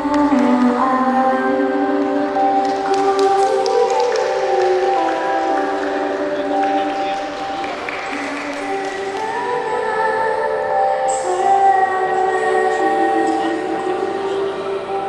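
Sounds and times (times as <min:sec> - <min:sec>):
vocal group singing in harmony: 0:00.0 - 0:15.0.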